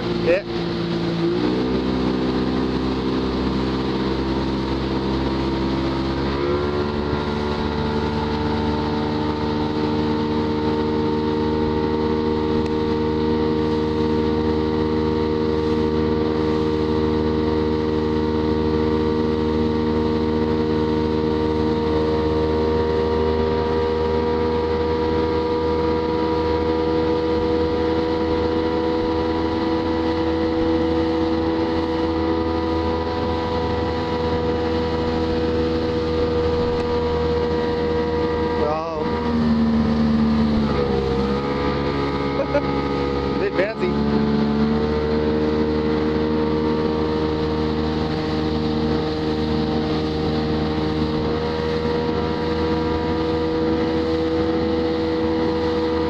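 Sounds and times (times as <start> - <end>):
motorboat engine running: 0.0 - 56.0
water noise: 0.0 - 56.0
wind noise: 24.9 - 43.5.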